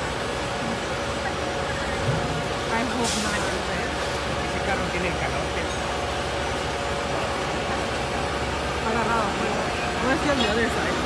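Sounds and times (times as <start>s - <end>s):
diesel engine running: 0.0s - 11.0s.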